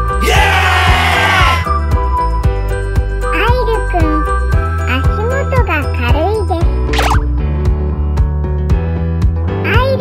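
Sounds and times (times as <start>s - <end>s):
cheerful jingly children's music: 1.8s - 7.4s.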